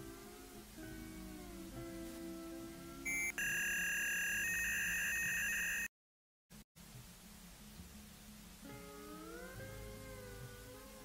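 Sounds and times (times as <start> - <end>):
short electronic beep: 3.1 - 5.9.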